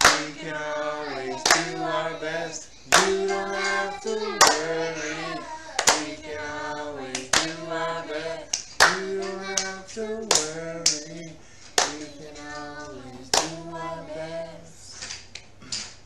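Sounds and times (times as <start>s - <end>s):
hand claps on a steady beat: 0.0s - 0.4s, 1.4s - 1.8s, 2.9s - 3.8s, 7.2s - 7.6s, 8.5s - 11.2s, 11.8s - 12.2s, 13.3s - 13.6s
group of voices singing: 0.0s - 15.2s.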